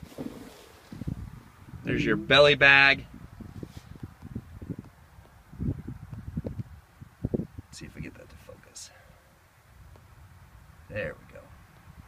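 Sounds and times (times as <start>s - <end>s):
microphone handling noise: 0.0s - 7.6s
wind on microphone: 0.0s - 8.1s.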